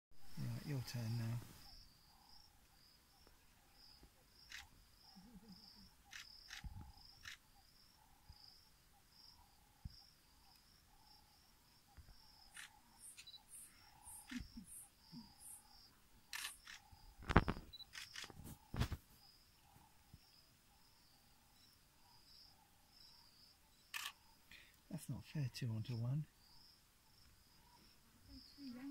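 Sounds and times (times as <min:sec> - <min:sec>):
insects chirping: 0:00.2 - 0:28.9.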